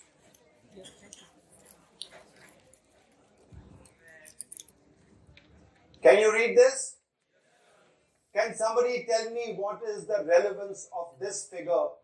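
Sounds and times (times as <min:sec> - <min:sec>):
faint indistinct voices: 0:00.0 - 0:06.2, 0:07.2 - 0:08.4
small clicks and ticks: 0:03.8 - 0:04.8.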